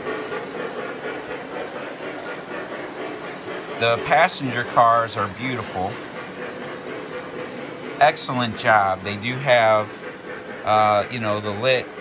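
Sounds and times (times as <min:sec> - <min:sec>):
model train wheels rolling on rails: 0:00.0 - 0:12.0.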